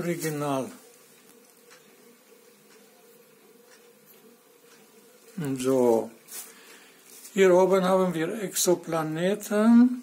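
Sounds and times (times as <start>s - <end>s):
soft clicks: 1.2s - 2.0s, 2.6s - 5.6s.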